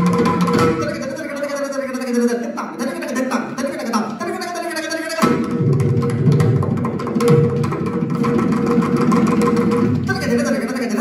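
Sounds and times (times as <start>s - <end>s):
hand drum fast strokes: 0.0s - 1.2s, 5.2s - 10.8s.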